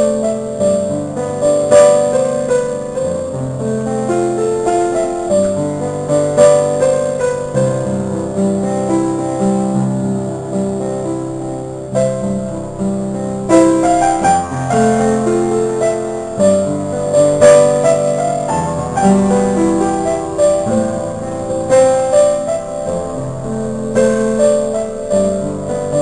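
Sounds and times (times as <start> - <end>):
slow piano melody: 0.0 - 26.0.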